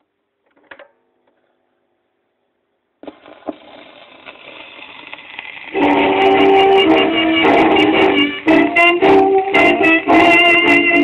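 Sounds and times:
record surface hiss and crackle: 0.0s - 11.0s
dance band playing a tango: 5.8s - 11.0s.

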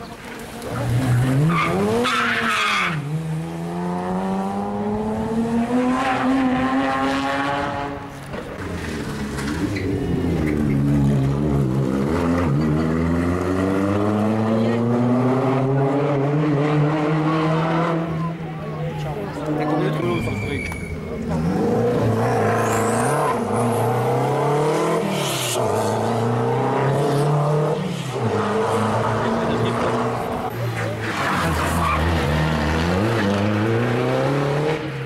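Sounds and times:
rally car engines accelerating: 0.1s - 35.0s.

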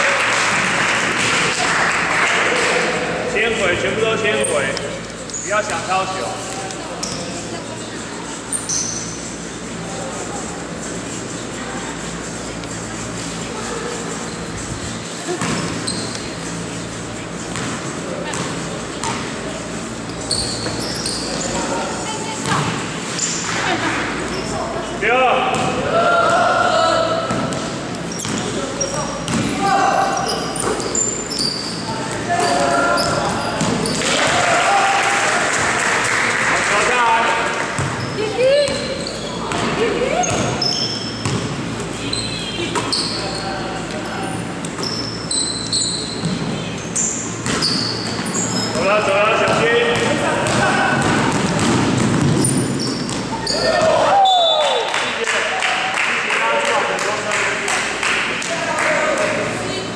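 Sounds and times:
sneakers squeaking: 2.5s - 34.5s, 37.4s - 54.9s
voices shouting: 25.7s - 27.3s, 29.5s - 35.9s, 53.3s - 54.9s
basketball dribbling on hardwood: 49.4s - 53.3s.

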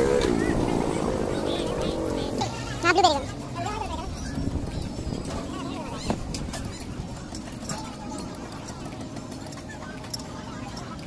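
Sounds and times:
street noise: 0.0s - 11.0s.

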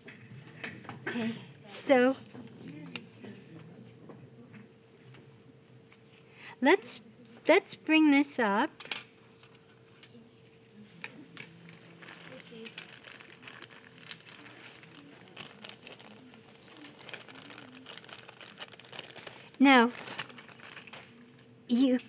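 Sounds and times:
paper rustling: 11.1s - 21.2s.

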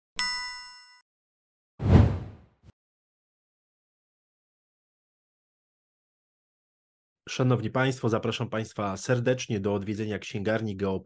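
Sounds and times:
bright bell ding: 0.2s - 1.0s
low whoosh: 1.8s - 2.4s.

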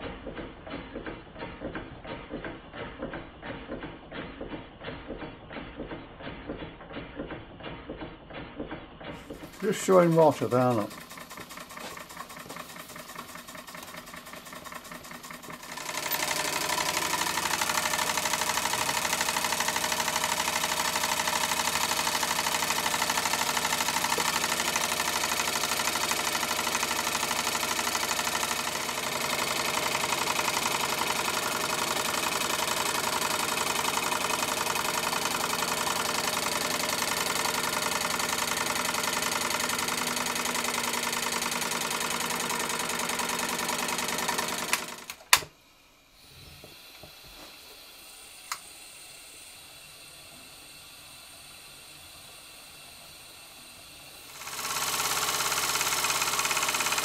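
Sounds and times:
steam engine running: 0.0s - 57.0s.

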